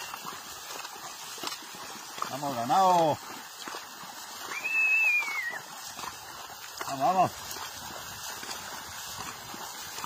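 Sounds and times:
person whistling high note: 4.5s - 5.6s.

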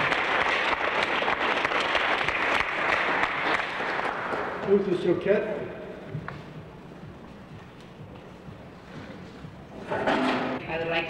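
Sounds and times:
audience applauding: 0.0s - 4.8s.

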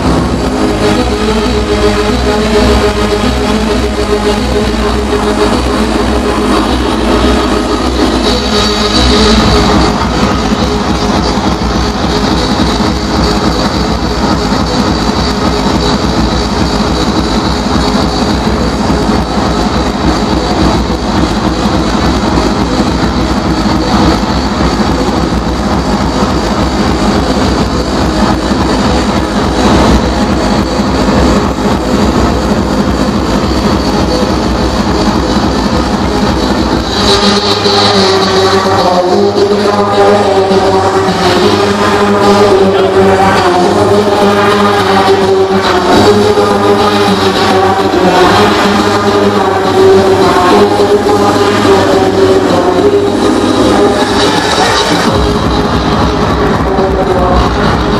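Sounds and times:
loud hardcore dance music: 0.0s - 57.9s.

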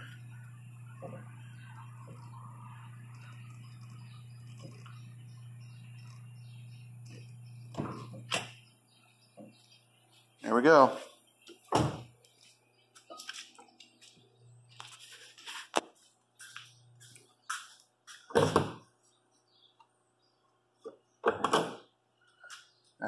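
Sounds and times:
car door and hood thumps: 11.7s - 12.1s.

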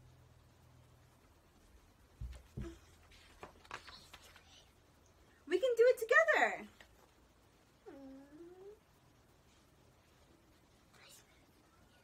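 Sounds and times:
person humming mm: 7.8s - 8.8s.

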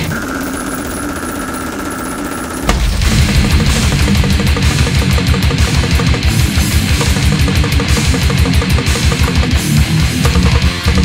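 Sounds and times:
rapid machine-like rattle: 0.0s - 11.0s
death metal band playing: 2.6s - 11.0s.

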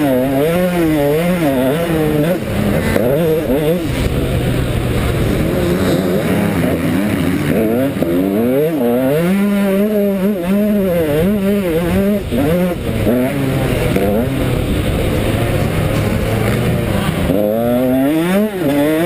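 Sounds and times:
motocross engine revving: 0.0s - 19.0s.

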